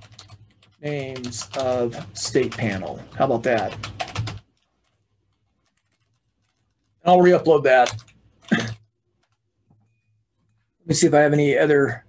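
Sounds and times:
typing on computer keyboard: 0:00.0 - 0:07.0, 0:07.7 - 0:09.4.

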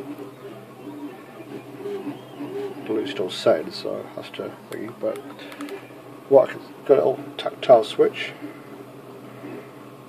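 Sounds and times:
faint background hum: 0:00.0 - 0:10.0.

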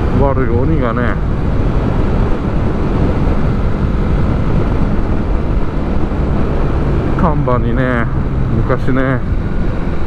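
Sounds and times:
road noise: 0:00.0 - 0:10.0
wind noise: 0:00.0 - 0:10.0
motorcycle engine running: 0:01.2 - 0:10.0.

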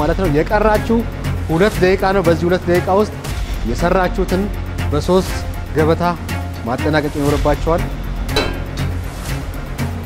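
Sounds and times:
background music: 0:00.0 - 0:10.0
sharp hit: 0:08.4 - 0:09.0.

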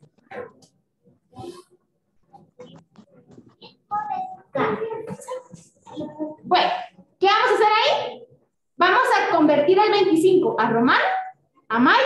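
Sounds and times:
child speaking: 0:03.6 - 0:06.5.

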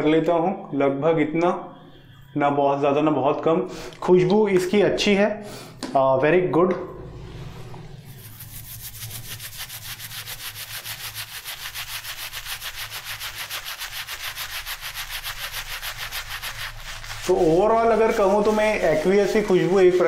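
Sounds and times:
shaving brush swishing on skin: 0:07.5 - 0:20.0.

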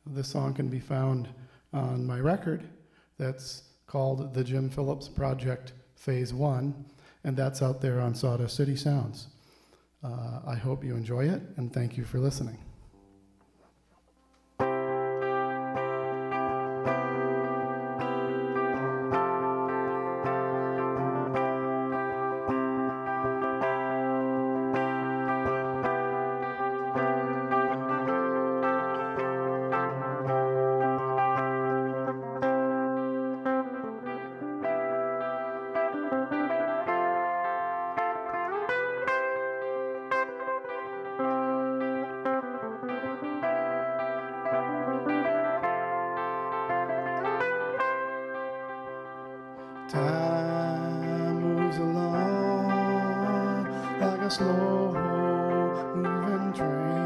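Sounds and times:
solo electric guitar: 0:11.8 - 0:57.0.

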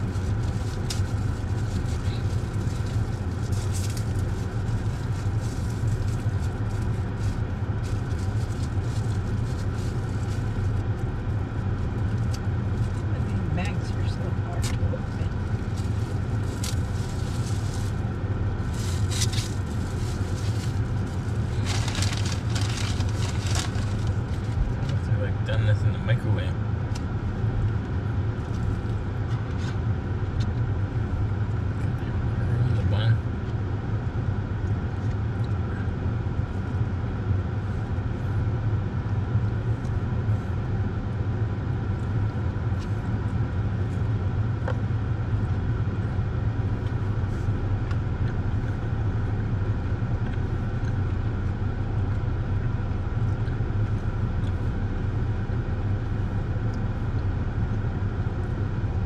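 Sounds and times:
car engine humming: 0:00.0 - 0:59.0.

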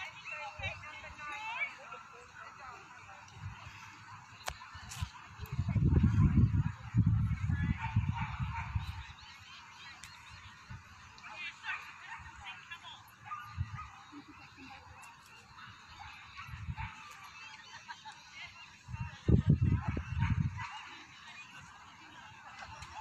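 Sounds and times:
crowd chatter: 0:00.0 - 0:23.0
wind buffeting microphone: 0:04.6 - 0:09.2, 0:13.2 - 0:15.0, 0:16.0 - 0:17.2, 0:18.8 - 0:20.9.

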